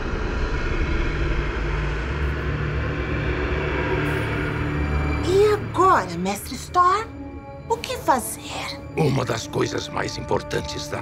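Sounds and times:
ominous low rumbling drone: 0.0 - 7.7.

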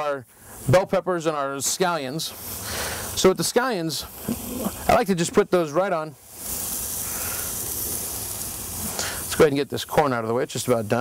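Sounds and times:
scallions sizzling on a grill: 0.0 - 11.0.

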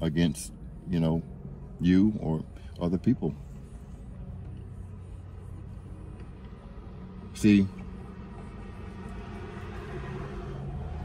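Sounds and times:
low rumble inside car cabin: 0.0 - 11.0.

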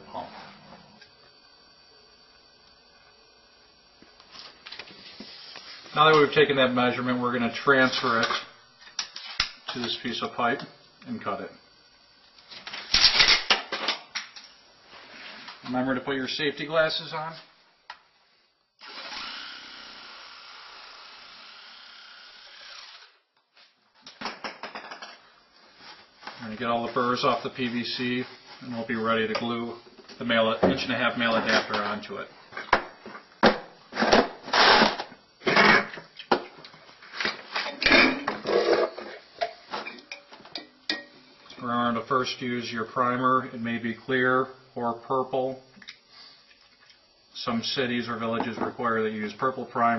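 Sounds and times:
pipe and cans scraping on worktop: 37.1 - 40.0.

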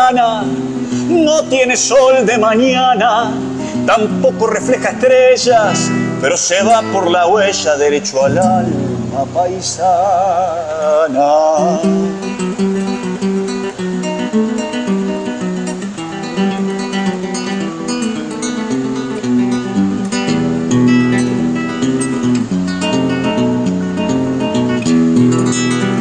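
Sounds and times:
classical guitar playing: 0.0 - 26.0.

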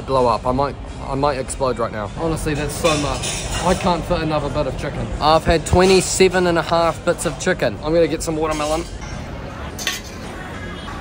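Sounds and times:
restaurant hubbub: 0.0 - 11.0
metal tray clinking: 9.8 - 10.3.

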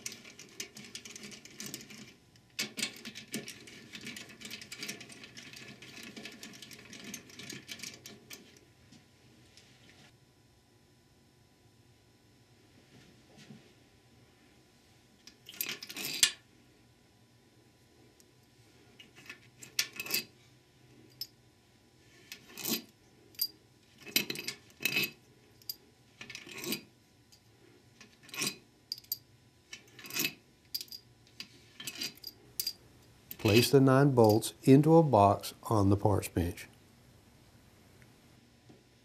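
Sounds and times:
metal bolts clinking together: 28.3 - 29.2, 30.0 - 31.0, 31.8 - 34.5.

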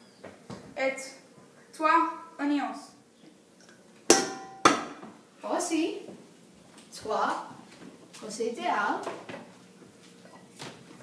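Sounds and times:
sharp knocks: 4.1 - 5.1.

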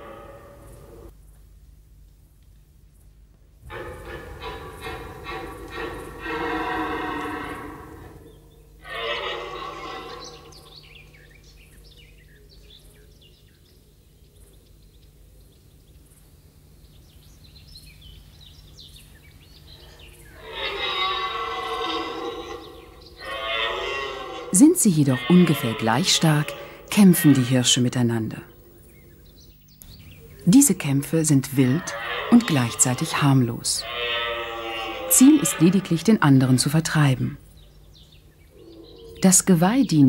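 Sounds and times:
deer stags roaring: 3.6 - 10.8, 19.8 - 27.9, 30.3 - 36.8.

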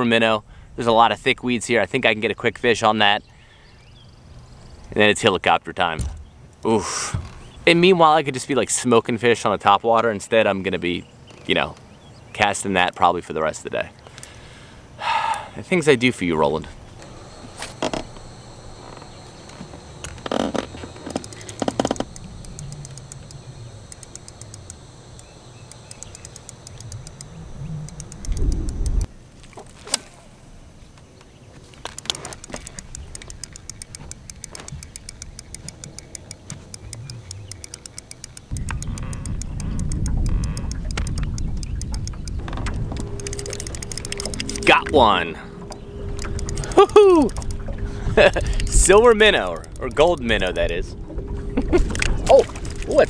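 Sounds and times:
fishing reel clicking: 17.0 - 29.1, 31.8 - 50.9
wind on microphone: 26.8 - 29.1, 38.5 - 45.0.

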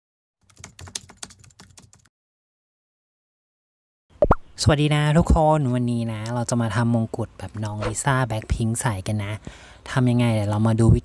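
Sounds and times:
person speaking: 4.7 - 9.4.

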